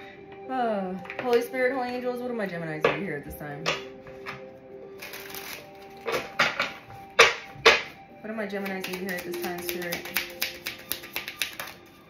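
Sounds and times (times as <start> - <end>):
faint background music: 0.0 - 12.0
cards being shuffled: 5.0 - 7.9, 8.6 - 12.0.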